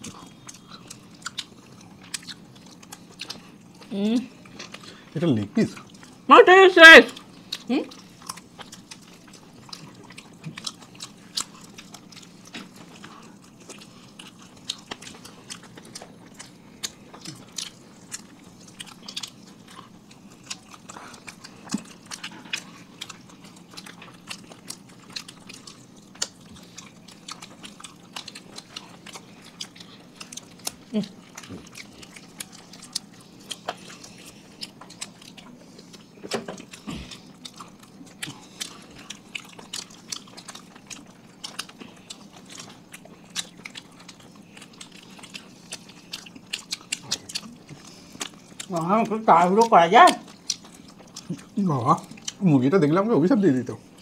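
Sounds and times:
people biting and chewing: 0.0s - 54.0s
lip smacks: 8.3s - 48.7s.

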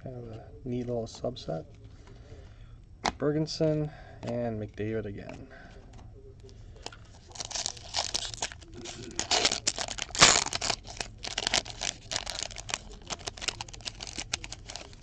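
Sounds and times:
foil wrapper crinkling: 6.8s - 15.0s
foil pack ripping open: 7.3s - 15.0s.

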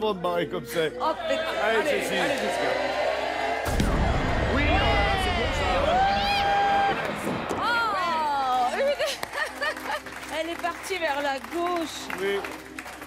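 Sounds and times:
people exclaiming: 4.4s - 9.1s.

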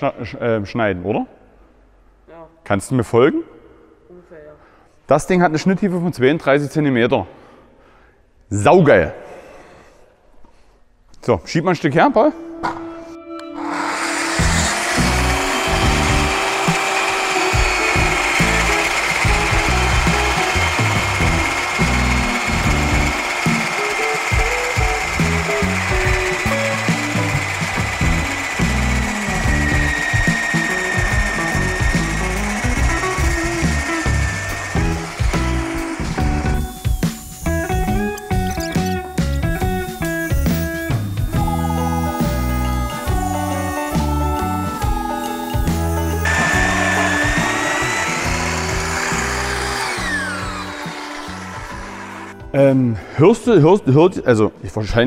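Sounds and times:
band saw cutting timber: 13.5s - 52.5s
background music with a beat: 14.4s - 50.8s.

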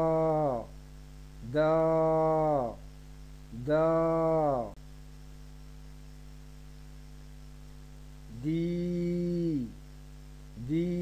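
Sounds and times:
mains electrical hum: 0.0s - 11.0s.

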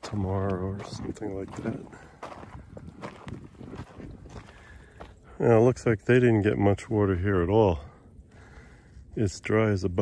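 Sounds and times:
footsteps crunching on gravel: 0.0s - 5.3s.

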